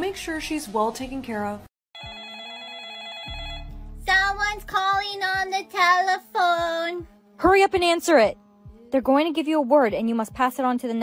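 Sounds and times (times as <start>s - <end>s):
electronic telephone ringtone: 2.0s - 3.8s.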